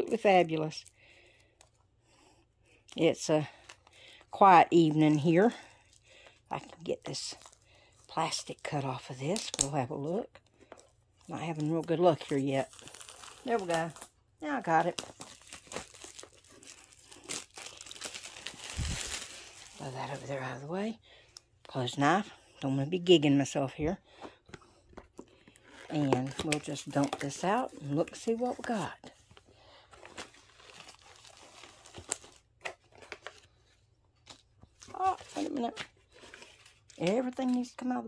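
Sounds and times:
plastic wrap crinkling: 10.6s - 20.7s, 25.1s - 33.5s.

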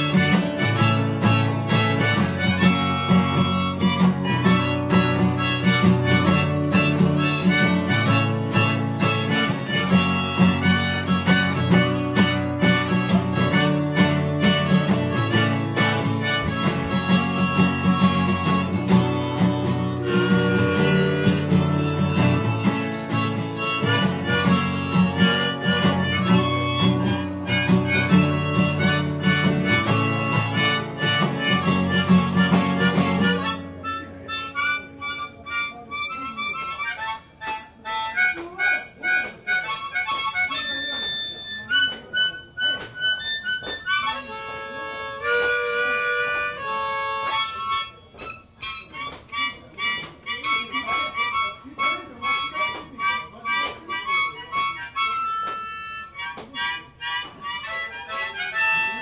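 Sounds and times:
strummed acoustic guitar: 0.0s - 56.5s
harmonica playing: 0.0s - 59.0s.

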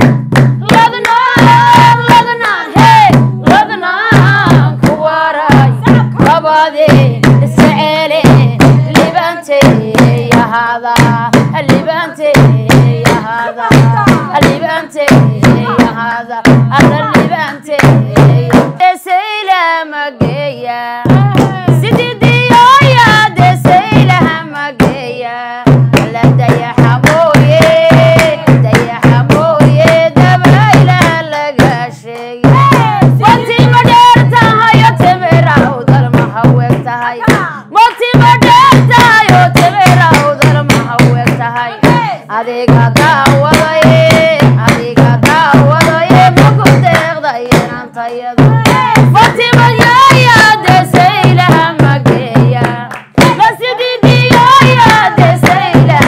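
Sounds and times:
hand claps: 0.0s - 2.7s, 43.0s - 56.0s
steady drum beat: 0.0s - 19.0s, 20.2s - 56.0s
women singing: 0.0s - 56.0s.

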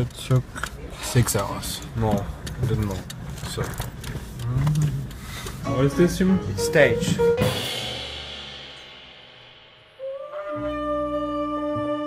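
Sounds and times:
held low note: 4.5s - 12.0s
crash cymbal ringing: 6.6s - 10.1s.

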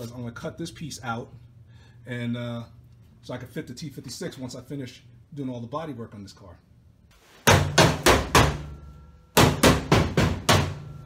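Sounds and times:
hammer blows: 7.4s - 11.0s.

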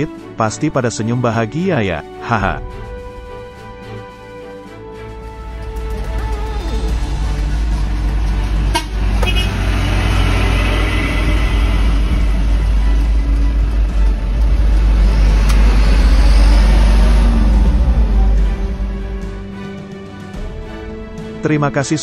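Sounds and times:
heavy trucks driving past: 5.0s - 21.4s
short horn toot: 8.7s - 9.7s.

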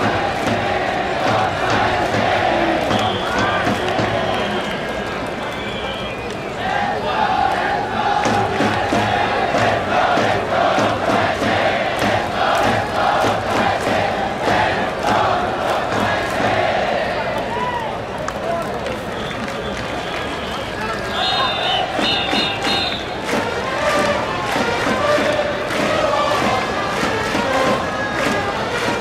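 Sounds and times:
rhythmic beat: 0.0s - 4.2s, 8.0s - 16.8s, 21.8s - 29.0s
crowd chanting in unison: 0.0s - 4.8s, 6.5s - 17.6s, 21.1s - 29.0s.

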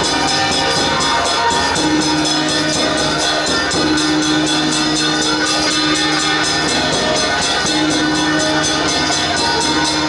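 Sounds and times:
hanging gong ringing: 0.0s - 10.0s
large drum beating fast: 0.0s - 10.0s.

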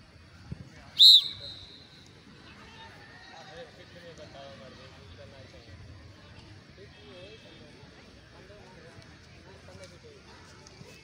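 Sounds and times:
loud whistle blast: 1.0s - 1.9s.

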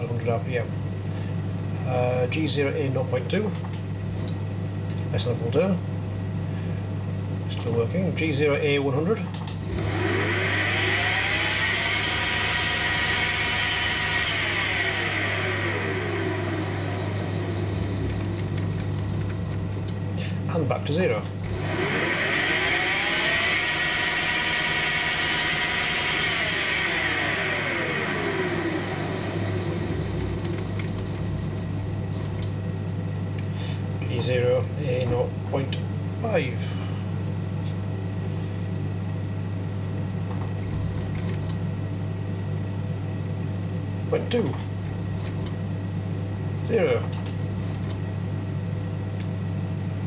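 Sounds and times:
steady low hum: 0.0s - 50.0s
electric motor whine: 9.6s - 20.2s, 21.3s - 33.5s, 39.8s - 43.4s.

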